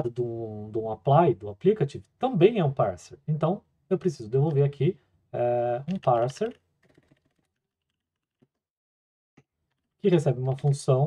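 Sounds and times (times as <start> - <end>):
faint keyboard keystrokes: 5.9 - 8.6.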